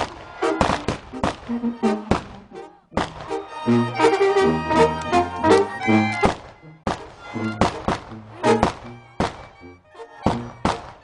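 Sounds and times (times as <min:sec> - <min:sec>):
festive band with accordion: 0:00.0 - 0:11.0.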